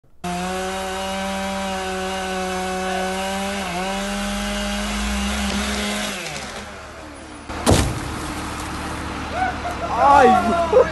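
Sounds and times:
chainsaw cutting wood: 0:00.2 - 0:06.8
tree trunk hitting ground: 0:07.5 - 0:08.9.

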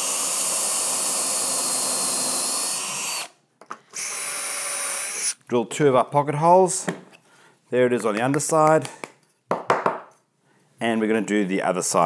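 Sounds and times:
drill clicks: 0:00.0 - 0:03.3
cordless drill whining: 0:00.0 - 0:05.4.

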